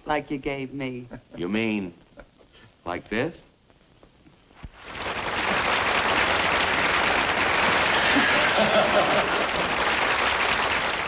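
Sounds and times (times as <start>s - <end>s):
studio audience applause: 4.7s - 11.0s.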